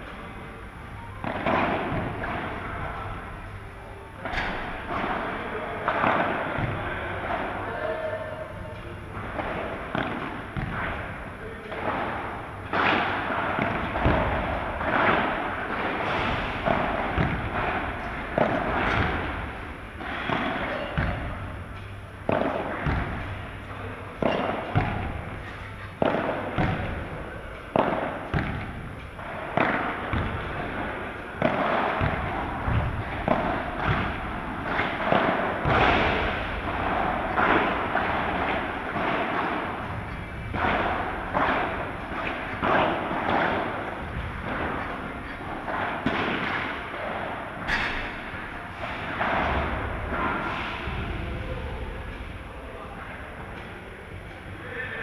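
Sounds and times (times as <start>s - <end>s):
padel ball hitting rackets: 1.2s - 3.0s, 4.2s - 7.8s, 9.1s - 23.4s, 24.2s - 51.1s.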